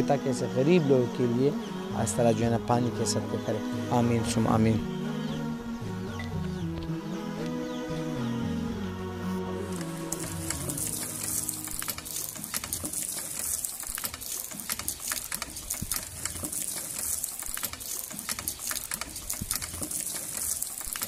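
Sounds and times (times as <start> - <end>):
water gushing into basin: 9.7 - 21.0
pump clicks and knocks: 11.8 - 21.0.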